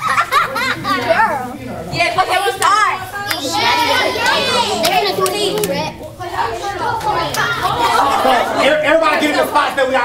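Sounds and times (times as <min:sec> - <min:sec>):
girls chattering: 0:00.0 - 0:10.0.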